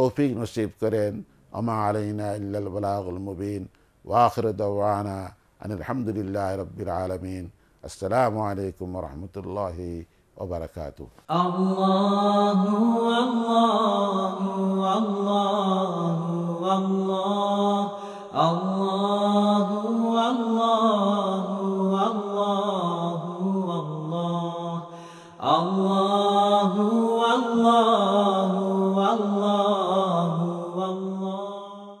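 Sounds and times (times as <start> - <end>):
devotional vocal chanting: 0.0 - 32.0
held vocal drone: 11.3 - 32.0.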